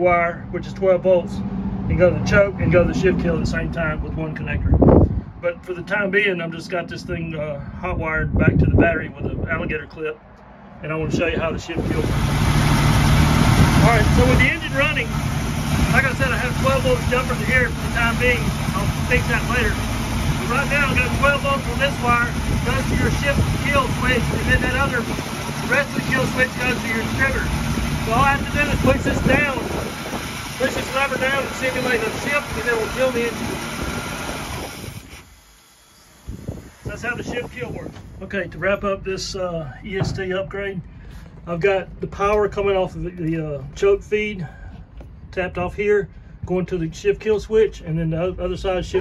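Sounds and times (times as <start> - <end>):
boat engine idling: 11.8 - 35.2.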